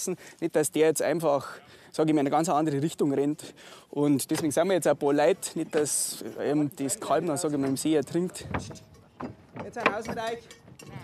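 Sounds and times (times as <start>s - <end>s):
hooves clattering on wooden deck: 6.8s - 11.0s.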